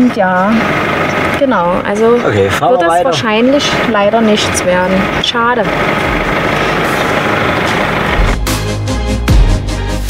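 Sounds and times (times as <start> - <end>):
truck engine idling: 0.0 - 9.9.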